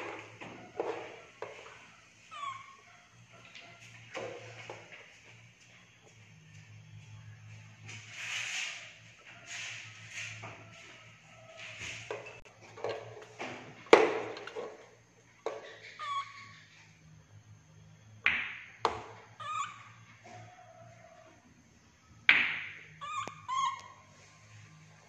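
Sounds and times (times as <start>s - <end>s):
baby monkey high calls: 2.2s - 3.5s, 15.6s - 17.0s, 19.3s - 21.2s, 22.9s - 24.2s.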